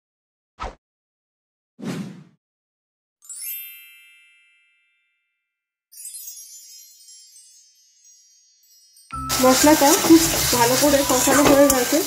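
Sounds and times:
wind chimes shimmering: 3.2s - 12.0s
bright chime ringing: 5.9s - 12.0s.

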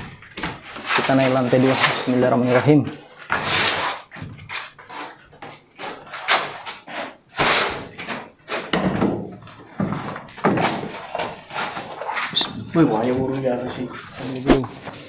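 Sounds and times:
wooden ladder knocking and scraping: 0.0s - 13.8s.

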